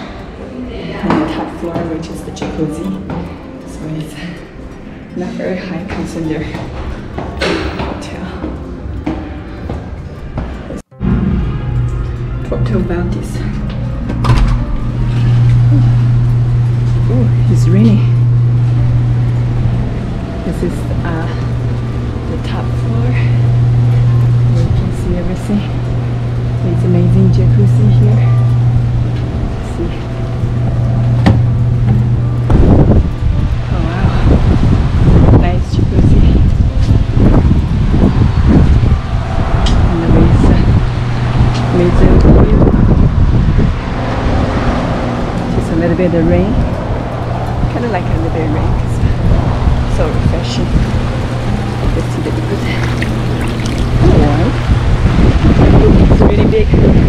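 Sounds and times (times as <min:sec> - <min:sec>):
steady low hum: 0:00.0 - 0:57.0
hot tub jets bubbling water: 0:11.6 - 0:57.0
wind buffeting microphone: 0:13.1 - 0:57.0.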